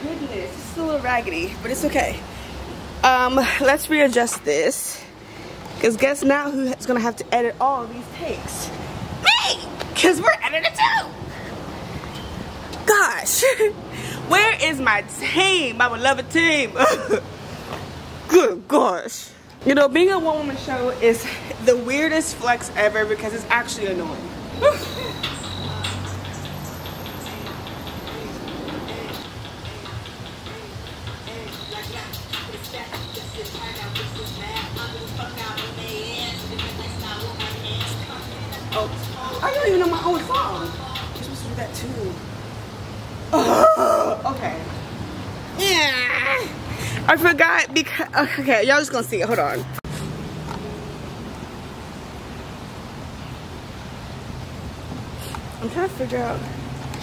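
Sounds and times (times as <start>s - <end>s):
outdoor background hiss: 0.0s - 57.0s
hi-hat ticks: 24.9s - 41.9s.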